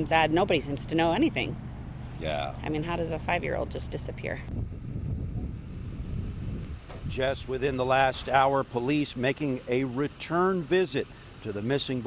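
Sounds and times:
wind buffeting microphone: 1.7 - 8.5.

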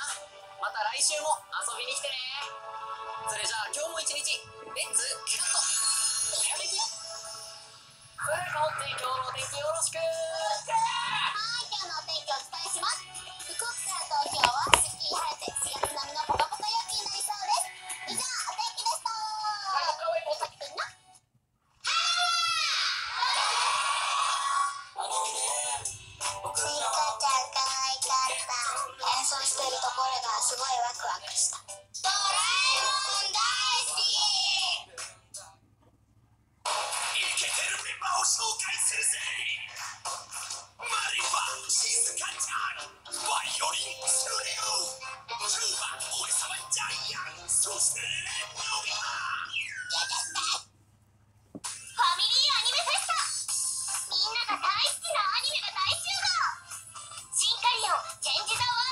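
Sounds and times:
music: 0.0 - 21.3, 23.2 - 35.6, 39.0 - 49.1, 52.9 - 58.9
cartoon voice crying out: 21.8 - 23.6
person speaking over music: 25.1 - 30.0.

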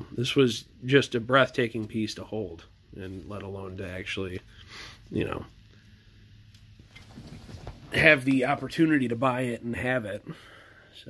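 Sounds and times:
faint handling noise: 5.5 - 9.5.

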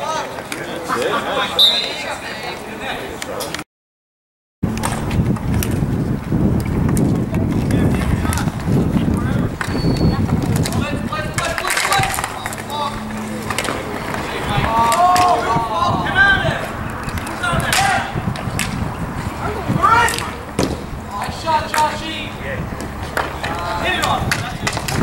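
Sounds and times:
spectators chattering: 0.0 - 3.6, 6.3 - 25.0
sticks and ball clacking: 6.6 - 15.6, 16.6 - 18.9, 20.0 - 22.2, 22.8 - 25.0.

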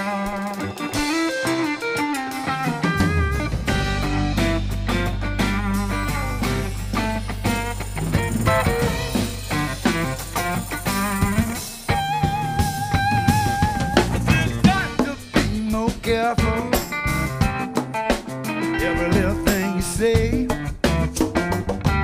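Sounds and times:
electric guitar lead lines: 0.0 - 22.0
funk blues band playing: 0.0 - 22.0.

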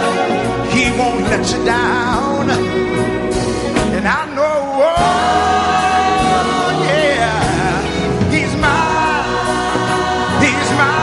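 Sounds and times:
band playing gospel: 0.0 - 11.0
gospel singer: 0.0 - 11.0.

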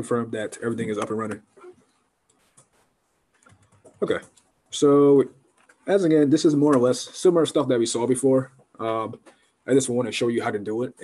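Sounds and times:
faint laptop keyboard typing: 0.9 - 4.6, 5.3 - 5.9.

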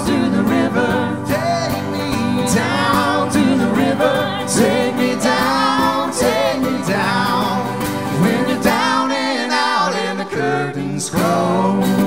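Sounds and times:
mandolin: 0.0 - 12.0
strummed acoustic guitar: 0.0 - 12.0
voices singing in harmony: 0.0 - 12.0.

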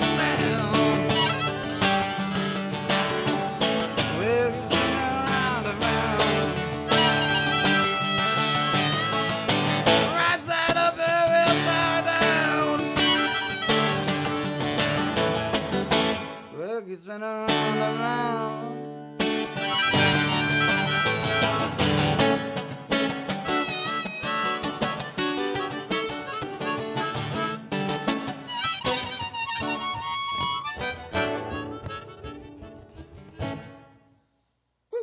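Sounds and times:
harmonica: 0.0 - 10.4, 11.4 - 16.1, 19.3 - 22.7, 23.3 - 34.0
strummed acoustic guitar: 0.0 - 34.1.

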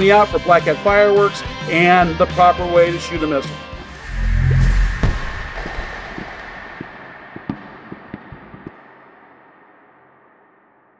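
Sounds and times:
firework boom: 3.9 - 8.9.

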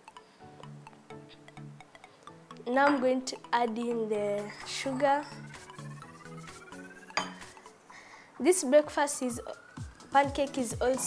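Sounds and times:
bowls clinking: 2.7 - 3.2, 4.4 - 5.5, 7.1 - 7.6.

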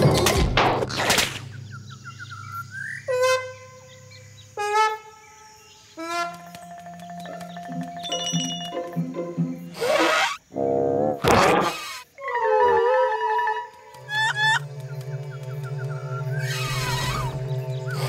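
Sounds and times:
cartoon music: 7.2 - 10.4.

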